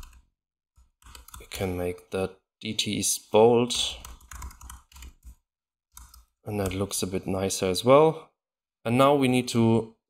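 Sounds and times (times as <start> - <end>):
computer keyboard typing: 0.0 - 1.7, 3.9 - 7.0.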